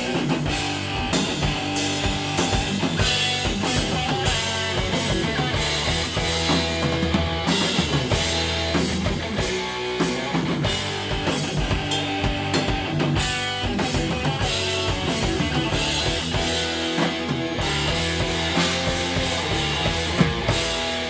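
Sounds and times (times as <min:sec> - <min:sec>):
bass drum: 0:00.0 - 0:21.0
drum kit: 0:00.0 - 0:21.0
electric guitar riffing: 0:00.0 - 0:21.0.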